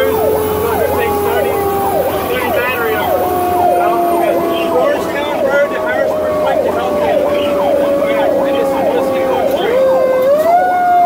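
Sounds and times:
electronic siren sweeping: 0:00.0 - 0:11.0
mechanical siren screaming: 0:00.0 - 0:11.0.

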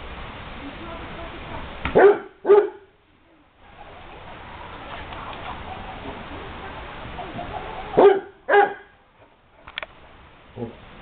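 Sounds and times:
dog barking deeply: 0:01.9 - 0:02.9, 0:07.9 - 0:09.0.

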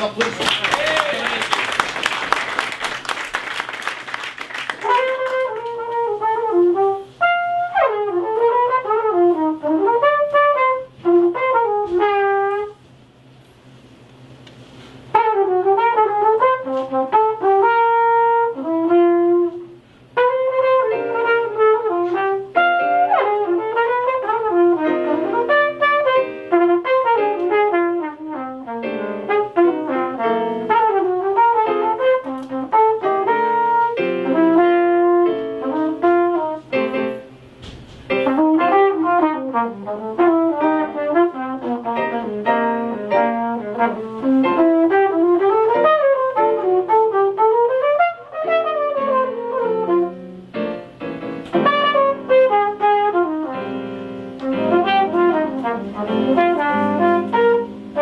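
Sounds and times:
applause: 0:00.0 - 0:05.8
flugelhorn melody: 0:04.8 - 0:12.8, 0:15.1 - 0:37.3, 0:38.1 - 0:50.8, 0:51.5 - 0:58.0.

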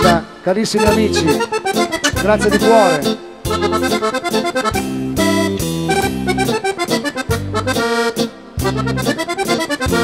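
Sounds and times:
piano accordion playing: 0:00.0 - 0:10.0.

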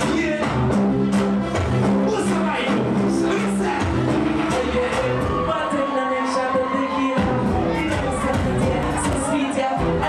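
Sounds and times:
live reggae music: 0:00.0 - 0:10.0
person singing: 0:03.2 - 0:10.0.

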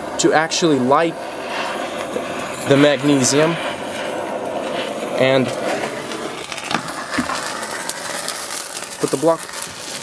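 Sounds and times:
magnesium burning hiss and crackles: 0:00.0 - 0:10.0.

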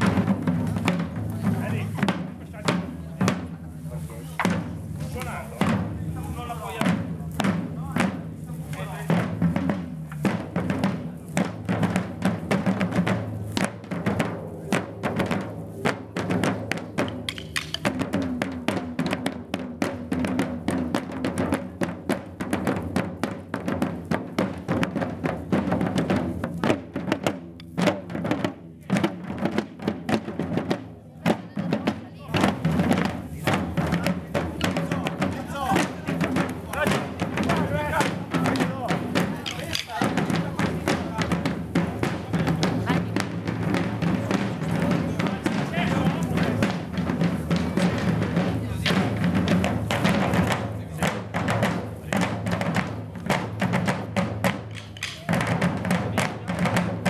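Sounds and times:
marching field drums: 0:00.0 - 0:57.0.

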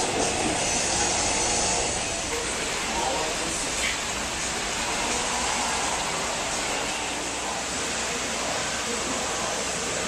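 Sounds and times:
pumps and fans droning: 0:00.0 - 0:10.0
water circulating through tanks: 0:00.0 - 0:10.0.

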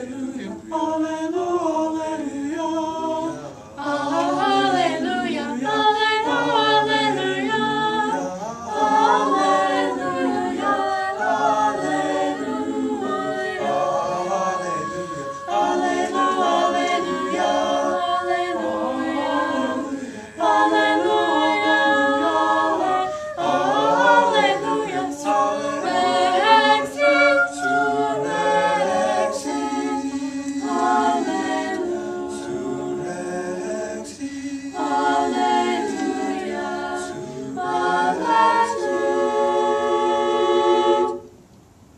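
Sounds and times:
choir singing a cappella: 0:00.0 - 0:41.4.

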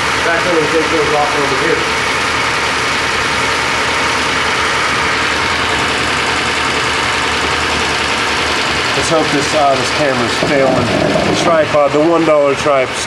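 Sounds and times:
grinding machine running: 0:00.0 - 0:13.0.

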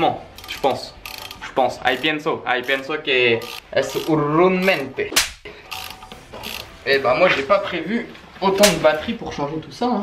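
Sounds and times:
metallic crack of spanner on bolt: 0:00.3 - 0:02.1.

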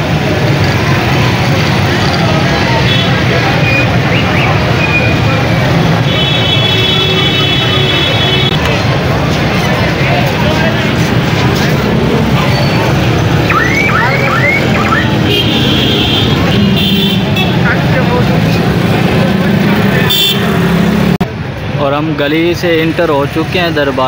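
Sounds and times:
car traffic: 0:00.0 - 0:24.0
crowd talking: 0:00.0 - 0:24.0
vehicle horn: 0:06.0 - 0:08.6, 0:15.2 - 0:17.6, 0:20.1 - 0:20.6.

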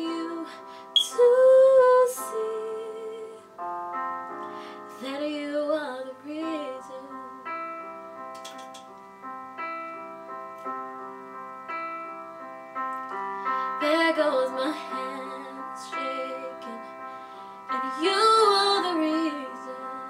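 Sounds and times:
piano chords: 0:00.0 - 0:20.0.

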